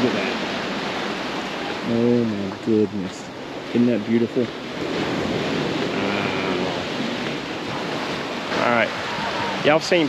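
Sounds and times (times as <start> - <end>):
waves breaking on rocks: 0.0 - 10.0
wind blowing on microphone: 0.0 - 10.0.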